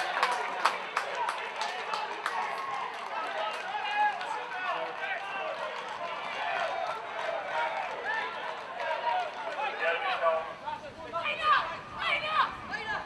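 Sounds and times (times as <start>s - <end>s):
people shouting outdoors: 0.0s - 13.0s.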